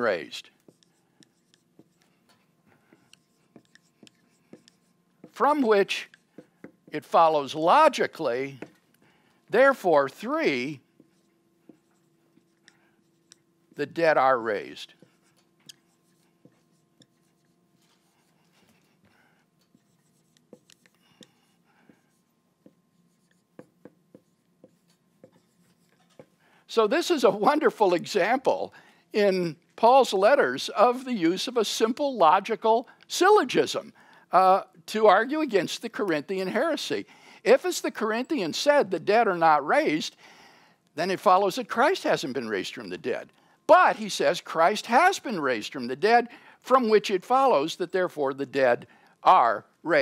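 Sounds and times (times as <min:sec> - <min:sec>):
marker scratching on whiteboard: 0:00.3 - 0:07.2, 0:09.8 - 0:14.0, 0:14.7 - 0:26.4.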